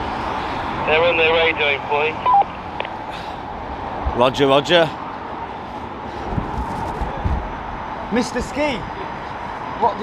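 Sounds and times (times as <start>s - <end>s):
traffic hum: 0.0s - 10.0s.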